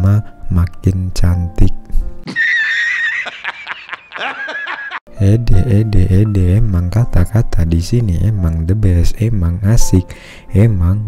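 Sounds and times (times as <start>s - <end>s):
high-pitched wavering comic cry: 2.3s - 3.5s.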